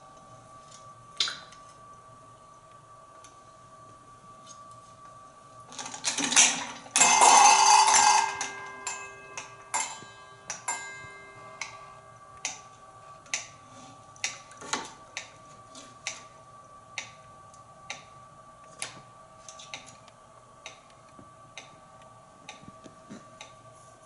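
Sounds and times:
metallic ringing: 0:06.3 - 0:13.6.

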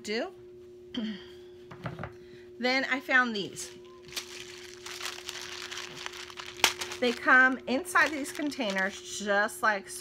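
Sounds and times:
faint steady hum: 0:00.0 - 0:10.0
plastic boxes crinkling and clicking: 0:04.0 - 0:07.3, 0:08.0 - 0:09.0.

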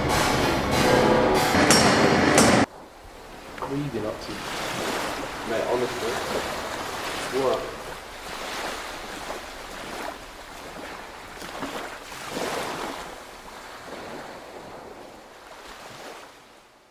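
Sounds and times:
sea waves surf roaring: 0:00.0 - 0:16.9.

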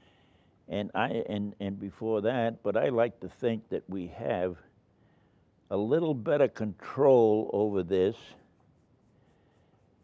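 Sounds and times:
paintbrush scratching on paper: 0:08.1 - 0:10.0.

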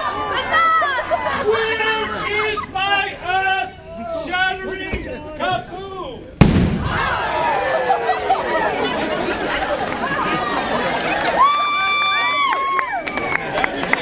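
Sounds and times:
crowd cheering and yelling: 0:00.0 - 0:04.4, 0:06.7 - 0:14.0
loud blast: 0:06.4 - 0:07.5.

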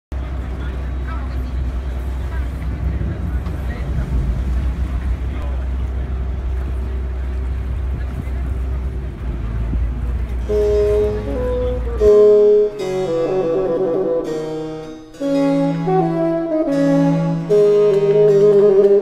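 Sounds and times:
boat motor rumbling: 0:00.1 - 0:19.0.

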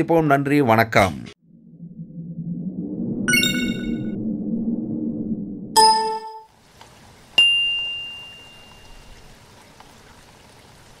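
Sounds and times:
notification bell ding: 0:05.8 - 0:06.4
multi-note chime: 0:05.8 - 0:06.5.

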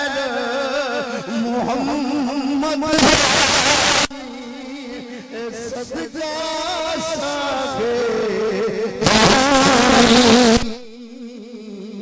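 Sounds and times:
man singing into microphone: 0:00.0 - 0:12.0.

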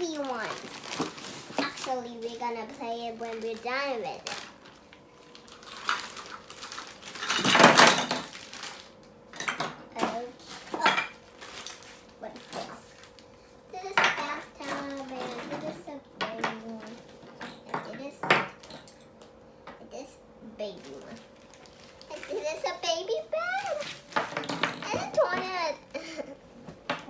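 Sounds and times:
plastic pieces clattering: 0:00.0 - 0:02.0, 0:03.2 - 0:08.9
plastic bag rustling: 0:00.0 - 0:09.0, 0:10.1 - 0:15.9, 0:20.6 - 0:26.2.

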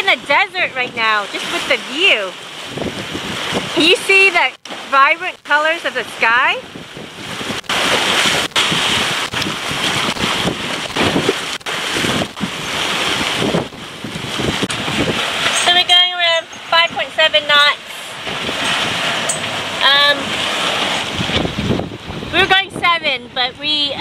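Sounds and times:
water rushing past hull: 0:00.0 - 0:24.0
wind buffeting microphone: 0:00.0 - 0:24.0
person speaking: 0:15.6 - 0:18.2, 0:19.8 - 0:20.4.

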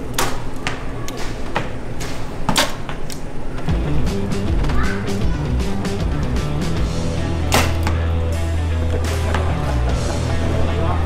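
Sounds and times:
music with deep bass and beat: 0:03.7 - 0:11.0
sharp hit: 0:07.4 - 0:08.1.

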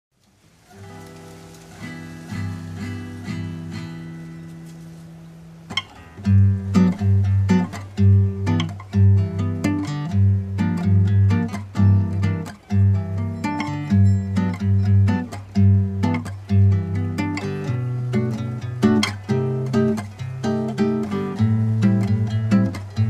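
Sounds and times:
acoustic guitar music: 0:00.3 - 0:23.0.

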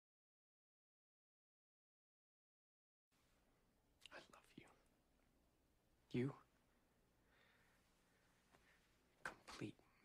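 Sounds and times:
low hiss: 0:03.2 - 0:10.0
faint whisper: 0:04.0 - 0:04.9.

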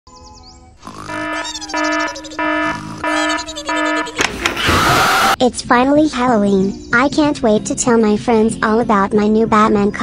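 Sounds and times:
held chords with sliding tones: 0:00.9 - 0:05.4.

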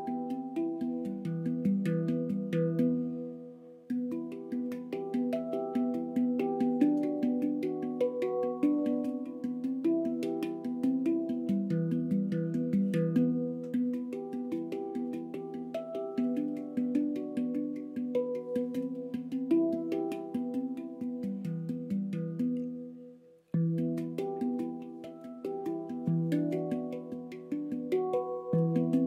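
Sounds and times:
handpan played with fingertips: 0:00.0 - 0:29.0.

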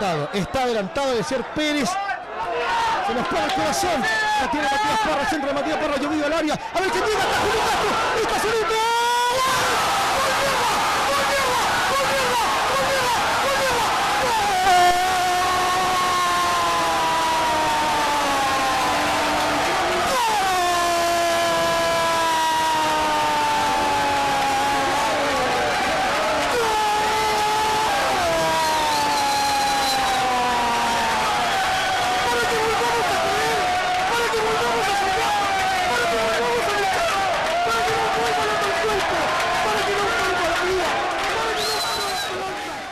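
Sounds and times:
commentator's long goal cry: 0:03.8 - 0:31.4.

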